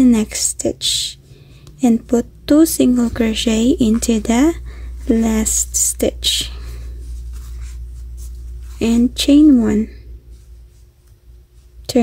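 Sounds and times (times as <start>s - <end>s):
steady low hum: 0.0s - 12.0s
crochet hook rustling through yarn: 1.8s - 12.0s.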